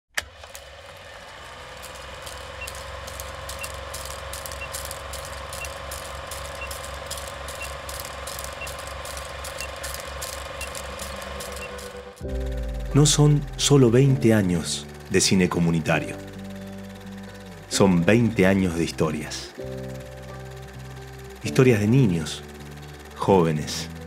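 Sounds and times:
film clattering through projector: 0:00.1 - 0:24.0
film projector whirring: 0:00.1 - 0:24.0
film crackle and clicks: 0:00.2 - 0:12.8.

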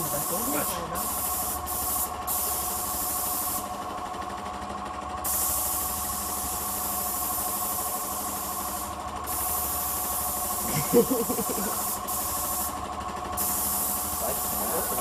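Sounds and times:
spray gun hissing: 0:00.0 - 0:03.8, 0:05.2 - 0:12.8, 0:13.4 - 0:15.0
spraying machine whine: 0:05.9 - 0:15.0.

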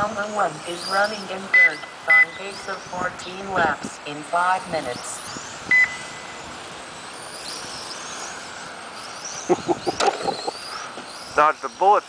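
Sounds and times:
rc car motors whining: 0:00.0 - 0:12.0
steady hiss: 0:00.0 - 0:12.0.

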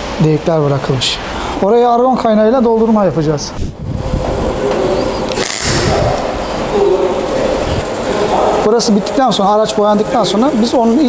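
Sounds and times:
welding arc hissing and buzzing: 0:03.8 - 0:11.0.

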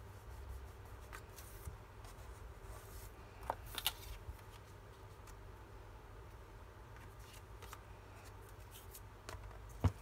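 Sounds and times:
faint paper rustling: 0:00.1 - 0:05.4, 0:06.9 - 0:10.0.

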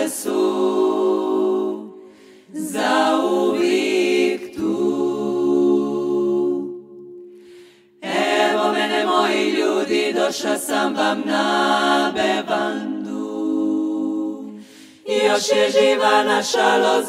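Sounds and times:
women singing a cappella harmony: 0:00.0 - 0:17.0.

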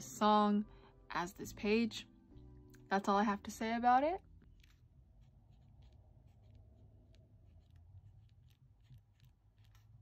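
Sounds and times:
marker scratching on paper: 0:04.5 - 0:10.0.

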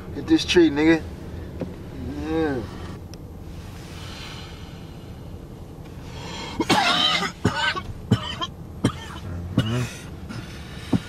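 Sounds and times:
man coughing hard: 0:06.6 - 0:10.5.

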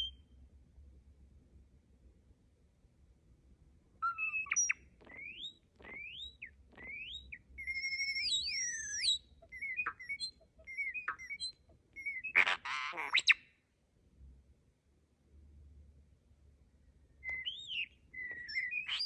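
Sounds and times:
starling singing: 0:04.0 - 0:13.4, 0:17.2 - 0:19.0
harsh rasping bird call: 0:12.0 - 0:13.4.

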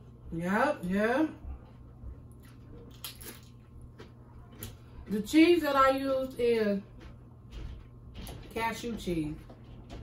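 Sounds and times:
chips being chewed: 0:02.4 - 0:04.8.

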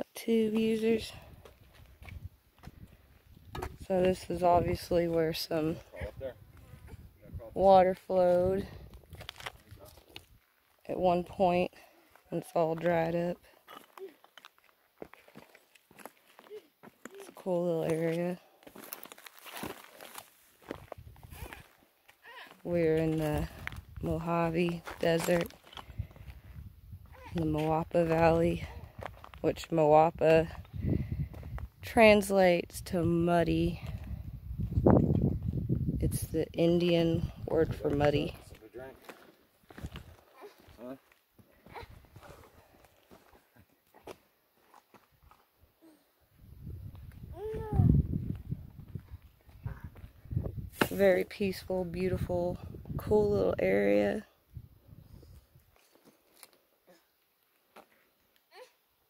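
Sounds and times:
footsteps on rocky ground: 0:00.4 - 0:32.1, 0:33.2 - 0:36.0, 0:36.7 - 0:45.6, 0:46.4 - 0:54.2.

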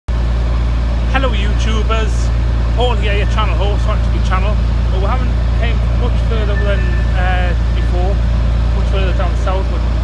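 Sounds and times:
boat engine droning: 0:00.1 - 0:10.0.

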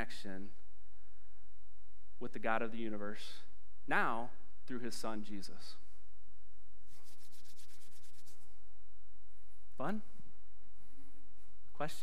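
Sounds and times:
palms rubbing together: 0:06.8 - 0:08.6.

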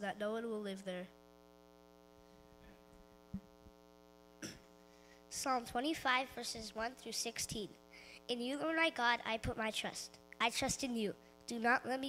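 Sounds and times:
low electrical hum: 0:00.0 - 0:12.0
microphone handling thump: 0:03.3 - 0:03.7
microphone click: 0:03.3 - 0:03.8.

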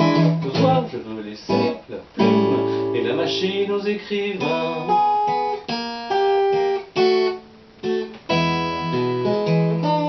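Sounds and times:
acoustic guitar strummed chords: 0:00.0 - 0:10.0.

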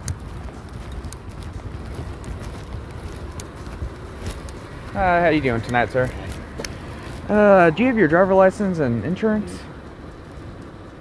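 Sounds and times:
footsteps on pavement: 0:00.0 - 0:11.0
jostled gear clicking: 0:00.0 - 0:11.0
steady low rumble: 0:00.0 - 0:11.0.

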